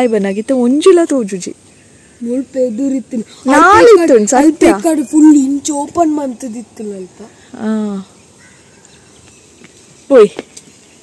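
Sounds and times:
faint steady outdoor hiss: 0:00.0 - 0:11.0.

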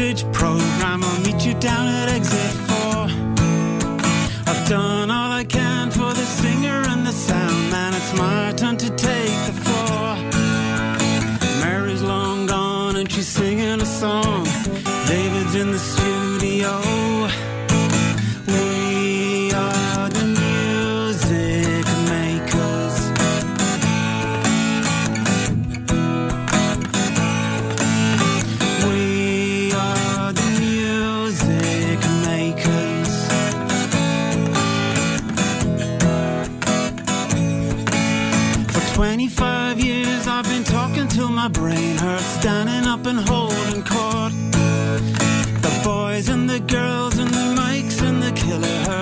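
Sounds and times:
man singing: 0:00.0 - 0:25.0, 0:26.9 - 0:35.6, 0:36.7 - 0:49.0
acoustic guitar strumming: 0:00.0 - 0:49.0.

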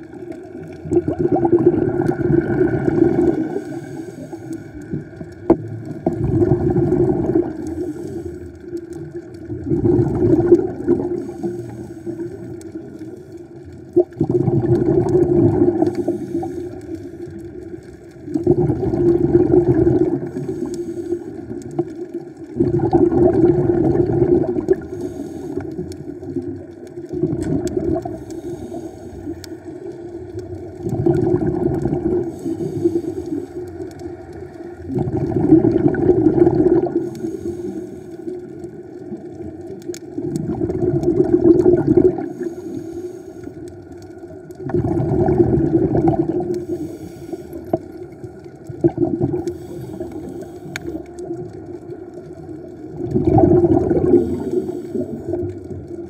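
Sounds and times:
gurgling rush of bubbles: 0:00.0 - 0:56.0
diver breathing through regulator: 0:02.5 - 0:05.2, 0:07.5 - 0:08.8, 0:11.1 - 0:12.8, 0:15.0 - 0:17.5, 0:20.2 - 0:21.7, 0:24.7 - 0:26.0, 0:28.0 - 0:29.6, 0:32.0 - 0:33.8, 0:36.7 - 0:38.4, 0:42.1 - 0:43.8, 0:46.3 - 0:48.0, 0:49.3 - 0:51.1, 0:53.9 - 0:55.5.

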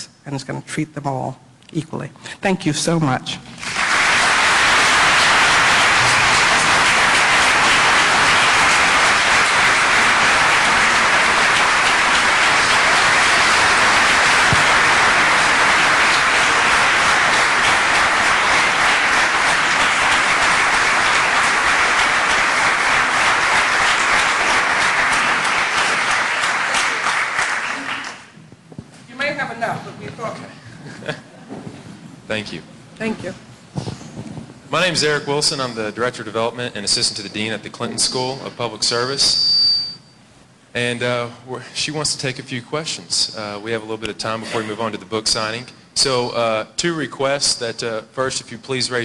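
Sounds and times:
audience applauding: 0:03.6 - 0:28.4.

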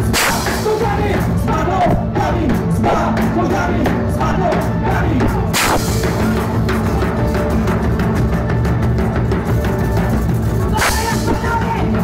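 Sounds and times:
live folk-punk band playing: 0:00.0 - 0:12.0
loud crash: 0:05.6 - 0:06.3.

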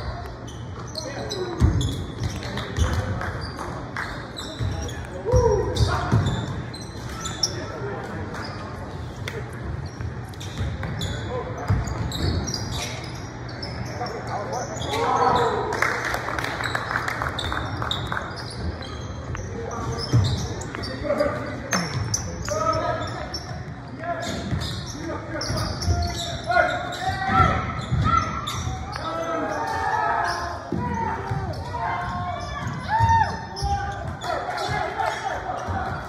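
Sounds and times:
sneakers squeaking: 0:00.0 - 0:36.0.

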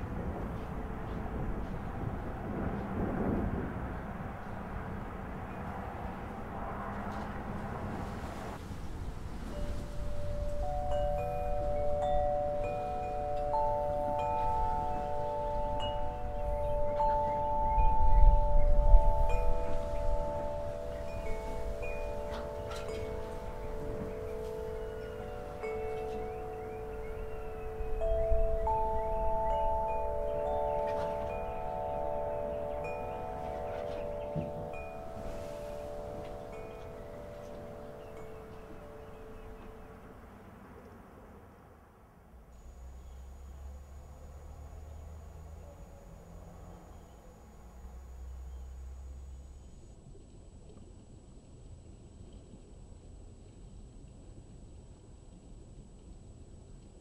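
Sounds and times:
wind rumbling on microphone: 0:00.0 - 0:40.8
wind chimes ringing: 0:09.3 - 0:40.0, 0:42.6 - 0:49.8.

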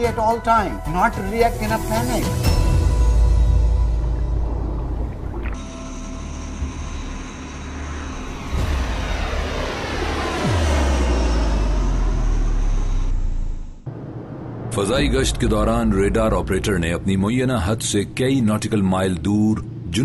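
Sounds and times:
deep rumbling music: 0:00.0 - 0:20.0
propeller aircraft flying past: 0:07.0 - 0:14.8.

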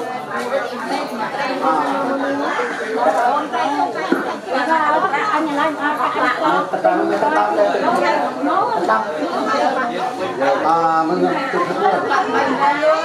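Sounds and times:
murmur of conversation: 0:00.0 - 0:13.0.

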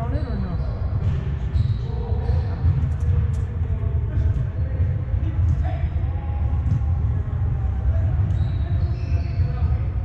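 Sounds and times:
low room rumble: 0:00.0 - 0:10.0.

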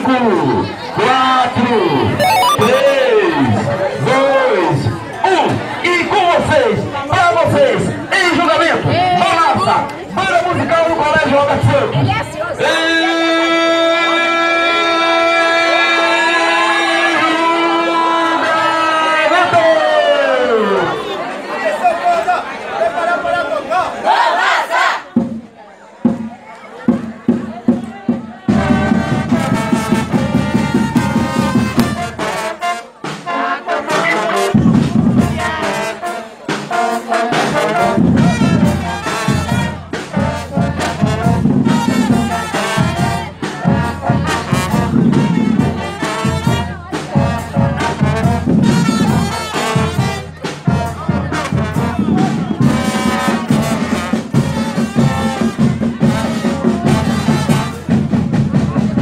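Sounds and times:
marching band playing brass tune: 0:02.2 - 0:03.2, 0:28.5 - 0:59.0.

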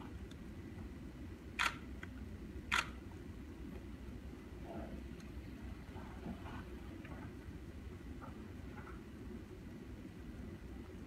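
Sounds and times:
low room hum: 0:00.0 - 0:11.0
camera shutter clicks: 0:01.6 - 0:01.8, 0:02.7 - 0:03.0.

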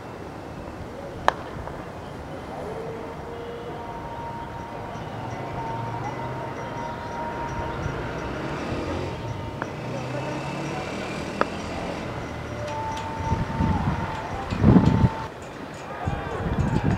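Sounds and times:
faint distant tones: 0:00.0 - 0:16.4.

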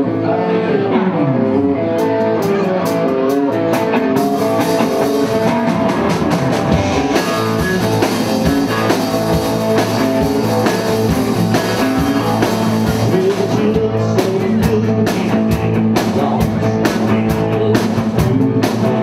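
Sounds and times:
electric guitar: 0:00.0 - 0:19.0
drum kit: 0:01.9 - 0:19.0.

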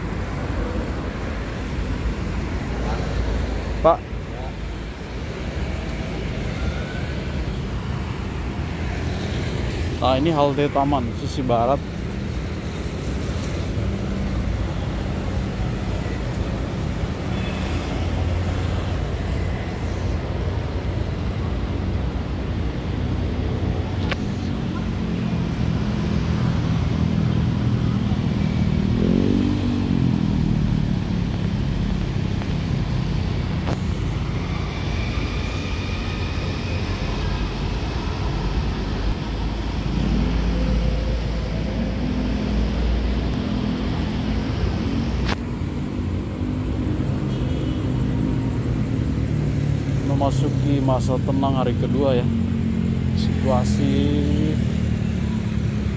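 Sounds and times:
street traffic rumble: 0:00.0 - 0:55.9
vehicle passing by: 0:24.4 - 0:33.2.

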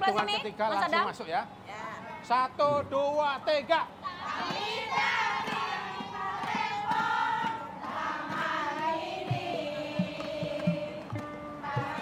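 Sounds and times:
women singing a cheer in unison: 0:04.1 - 0:12.0.

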